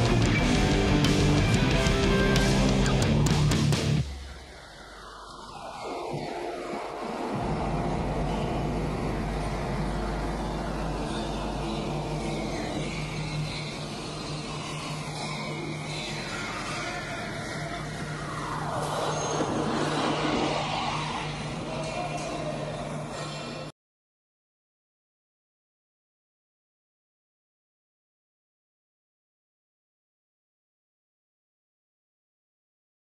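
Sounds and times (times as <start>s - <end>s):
rushing noise: 2.9s - 23.2s.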